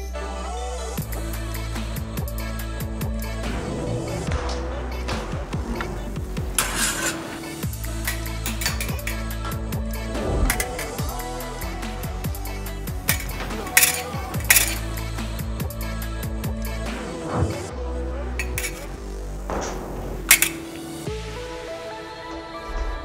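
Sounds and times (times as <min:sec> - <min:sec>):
background music with bass line: 0:00.0 - 0:23.0
fencing blades clinking: 0:06.6 - 0:07.3, 0:08.0 - 0:09.4, 0:10.5 - 0:11.0, 0:13.0 - 0:15.0, 0:18.4 - 0:18.9, 0:20.3 - 0:20.8.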